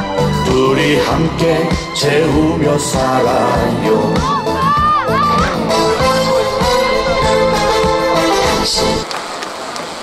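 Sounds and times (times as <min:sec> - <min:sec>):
noisy crowd: 0:01.1 - 0:09.0.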